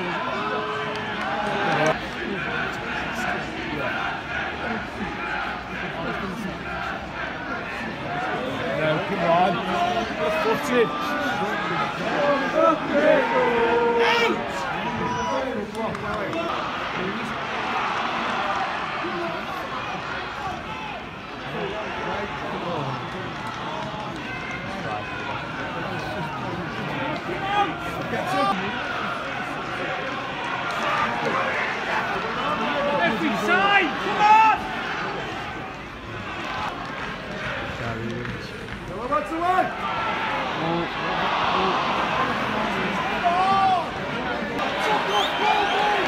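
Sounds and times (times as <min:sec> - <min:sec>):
crowd chatter: 0:00.0 - 0:46.0
crowd shouting: 0:00.0 - 0:46.0.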